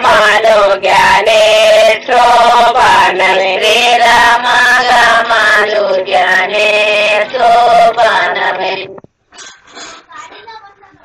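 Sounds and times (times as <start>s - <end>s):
women singing folk song: 0.0s - 9.0s.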